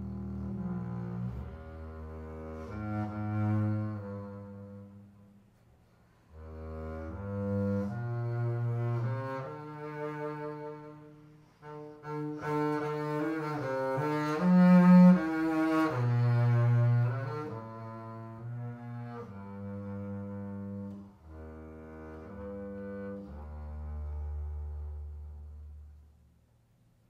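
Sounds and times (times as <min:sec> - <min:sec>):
bowed double bass: 0:00.0 - 0:26.8.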